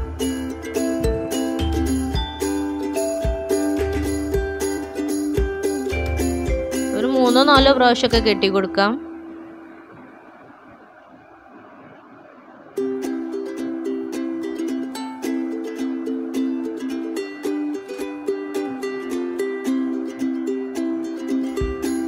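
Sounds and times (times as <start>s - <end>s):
music with plucked notes: 0.0s - 9.5s, 12.8s - 22.0s.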